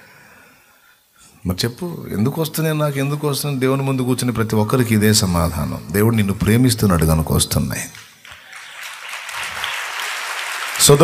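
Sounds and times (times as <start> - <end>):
audience applauding: 7.9 - 11.0.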